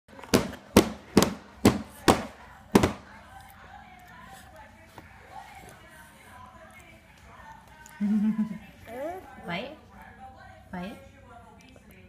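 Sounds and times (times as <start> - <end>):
hand slapping plastic tray: 0.2 - 3.0.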